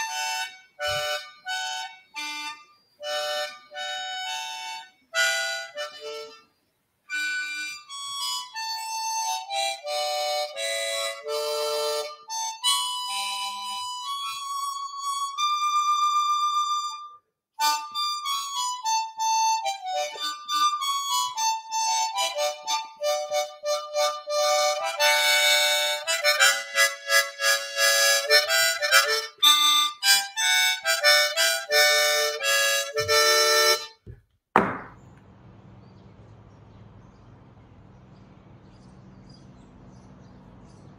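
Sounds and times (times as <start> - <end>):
harmonica playing: 0.0 - 34.1.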